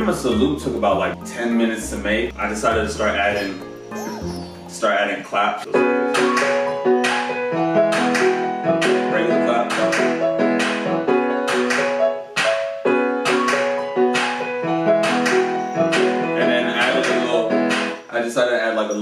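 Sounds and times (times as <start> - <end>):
held bass line: 0.0 - 4.9
sampled keyboard chords: 0.0 - 18.1
programmed hand claps: 6.1 - 18.0.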